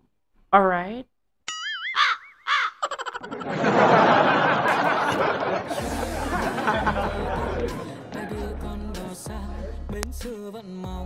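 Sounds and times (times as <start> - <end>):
crow cawing: 1.9 - 3.1.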